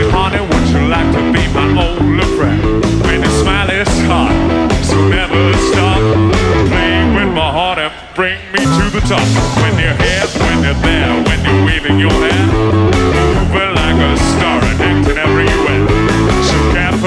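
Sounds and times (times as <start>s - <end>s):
steady drum beat: 0.0s - 7.3s, 8.6s - 17.0s
bass guitar: 0.0s - 17.0s
electric guitar: 0.0s - 17.0s.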